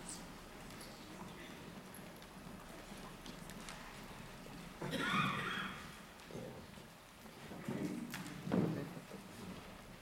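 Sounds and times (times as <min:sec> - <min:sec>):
footsteps on wooden stage: 0:00.0 - 0:04.8, 0:05.8 - 0:10.0.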